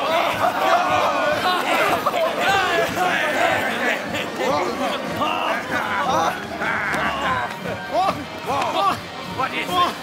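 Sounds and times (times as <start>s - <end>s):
men shouting and whooping: 0.0s - 9.0s.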